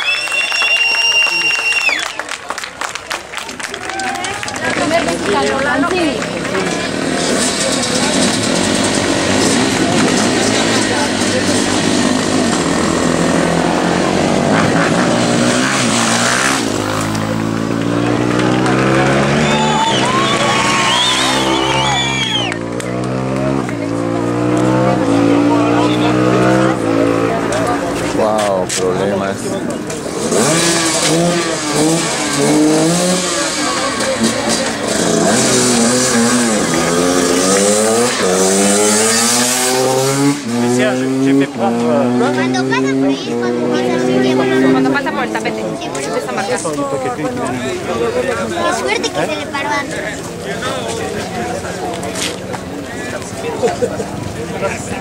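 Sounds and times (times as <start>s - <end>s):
motorcycle engines revving: 4.0s - 55.0s.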